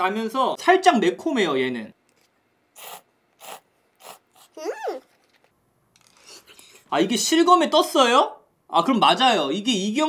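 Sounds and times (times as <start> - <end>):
noodles slurped: 2.8 - 5.4.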